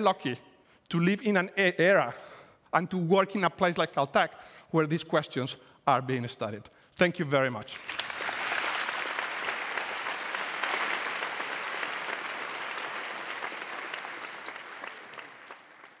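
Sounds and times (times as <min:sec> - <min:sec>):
audience applauding: 0:07.7 - 0:16.0.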